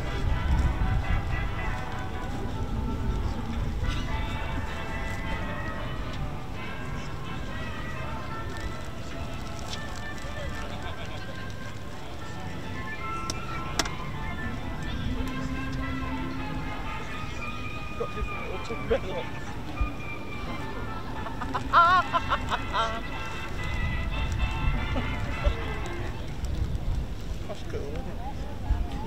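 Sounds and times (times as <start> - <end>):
music: 0.0 - 27.2.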